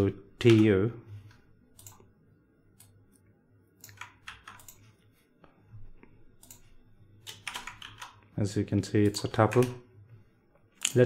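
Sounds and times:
low steady hum: 0.0s - 11.0s
computer keyboard keystrokes: 1.7s - 2.1s, 3.8s - 4.9s, 6.4s - 8.2s, 9.1s - 9.8s, 10.8s - 11.0s.

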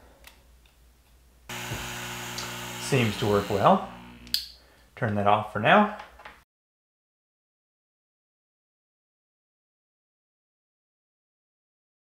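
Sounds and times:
air pump humming and hissing: 1.5s - 4.4s.

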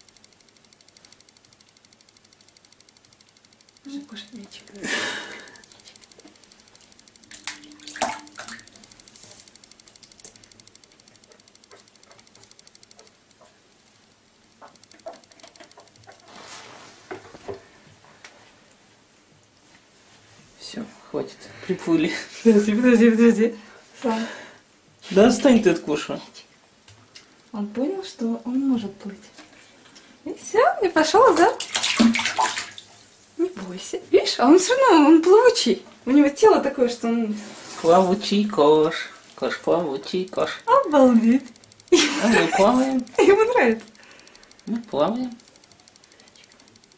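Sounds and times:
faint water rippling: 2.6s - 18.2s, 28.6s - 35.1s
water splashing in a bathtub: 4.0s - 10.4s, 30.9s - 33.8s.

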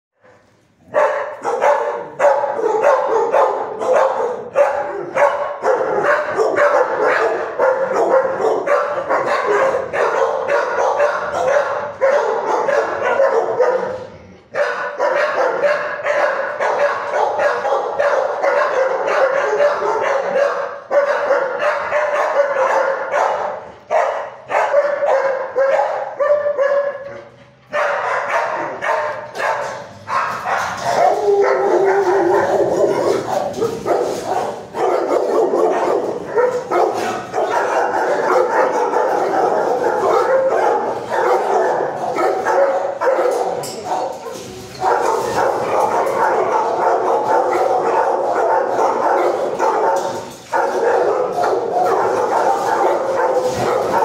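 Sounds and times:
dogs barking: 0.2s - 54.0s.

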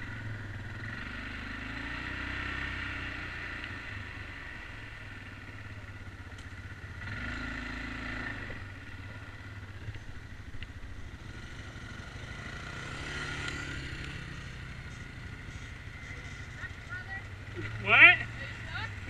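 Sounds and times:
atv engine revving: 0.0s - 19.0s.

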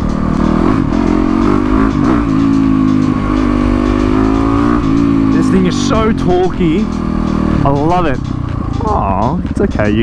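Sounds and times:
motorcycle engine pulling steadily: 0.0s - 10.0s.

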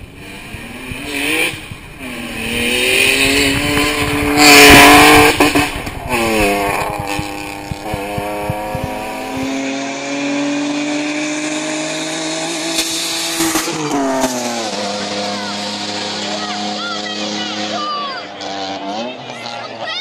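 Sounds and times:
car engine at full throttle: 0.0s - 20.0s.

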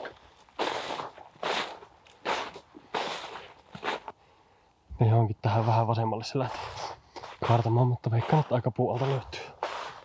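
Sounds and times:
footsteps on snow: 0.0s - 4.2s, 5.5s - 10.0s.

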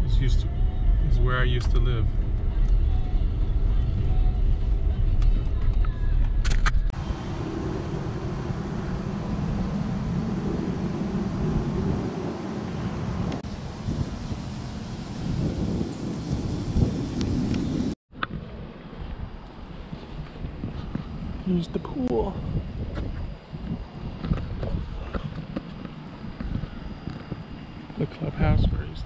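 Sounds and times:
car rumble from inside cabin: 6.9s - 14.5s
hissy outdoor background noise: 7.0s - 20.4s.

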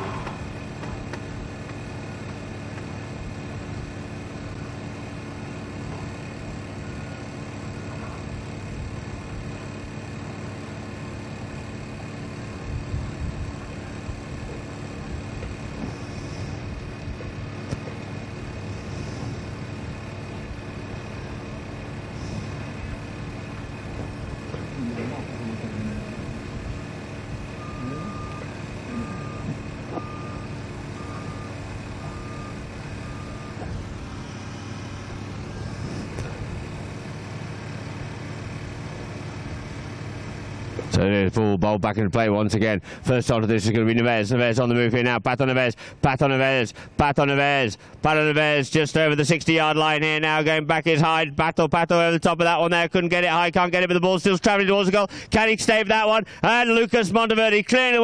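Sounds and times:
heavy vehicle engine running: 0.0s - 58.0s
reversing alarm beeping: 21.2s - 36.8s.

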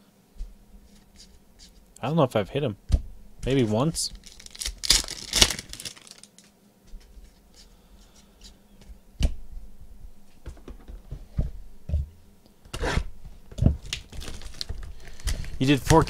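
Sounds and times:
cards rustling: 3.5s - 6.5s, 13.9s - 16.0s
foil wrapper tearing and crinkling: 4.1s - 6.5s, 13.8s - 16.0s.

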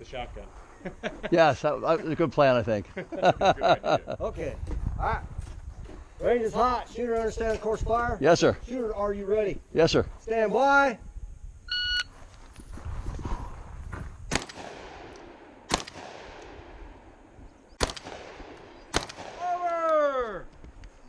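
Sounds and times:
shot timer beep: 11.7s - 12.1s
shotgun shots: 14.3s - 17.2s, 17.8s - 19.8s.

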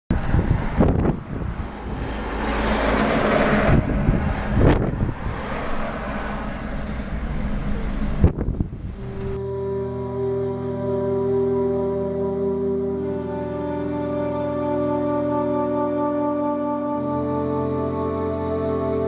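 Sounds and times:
wind gusts on microphone: 0.1s - 9.4s
deep rumble: 0.1s - 9.5s
road traffic: 0.1s - 19.0s
wind: 0.1s - 19.0s
slow music with long notes: 8.9s - 19.0s.

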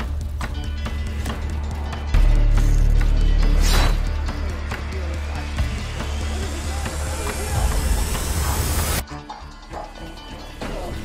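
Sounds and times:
heavy low drone: 0.9s - 9.0s.

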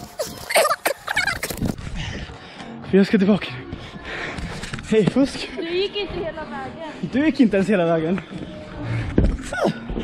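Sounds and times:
foam blocks rustling and squeaking: 0.0s - 1.8s.

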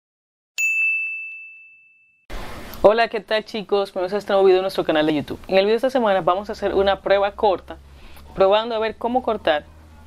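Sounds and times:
bright ding: 0.6s - 2.2s.

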